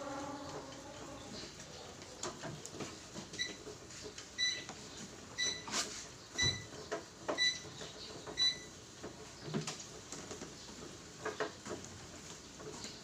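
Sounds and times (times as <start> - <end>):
treadmill console beeping: 3.2 - 9.2.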